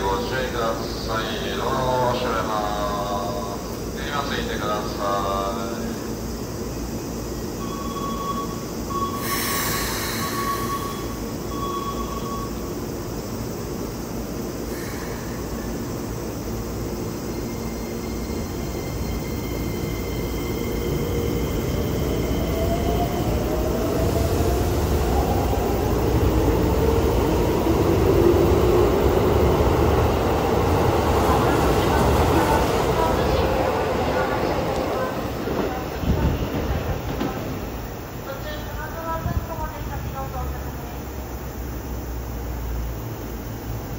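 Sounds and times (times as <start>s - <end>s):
steady train hum: 0.0s - 43.9s.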